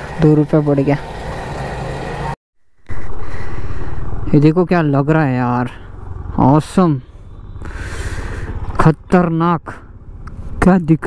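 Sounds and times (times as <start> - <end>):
scooter engine: 0.0 - 10.7
engine running steadily: 0.0 - 11.0
road noise: 0.0 - 11.0.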